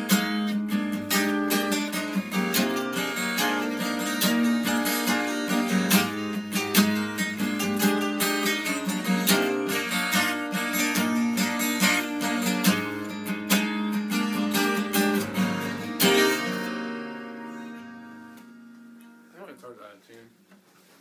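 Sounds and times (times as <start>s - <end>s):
guitar strummed in quick chords: 0.0s - 19.3s.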